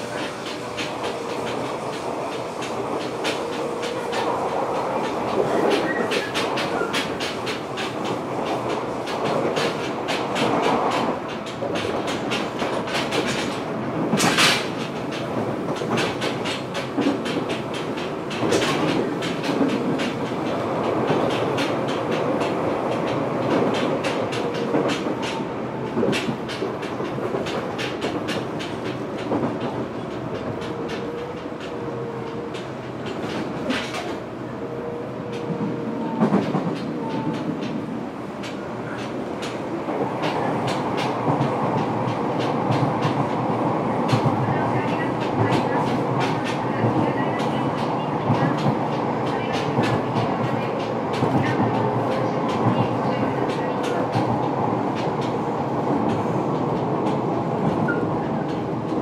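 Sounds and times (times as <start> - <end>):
train clatter: 0.0 - 59.0
train running gear rumble: 0.0 - 59.0
train wheels clicking over track: 0.0 - 59.0.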